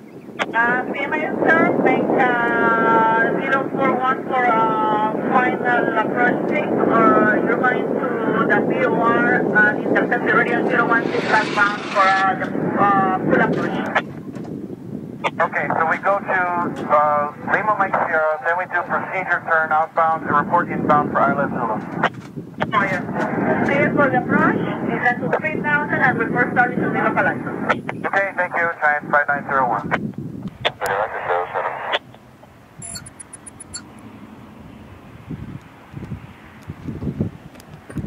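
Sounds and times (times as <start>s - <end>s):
voices over radio: 0.4s - 14.1s, 15.2s - 32.2s
radio hiss: 8.4s - 14.1s, 26.6s - 30.0s, 30.6s - 32.2s.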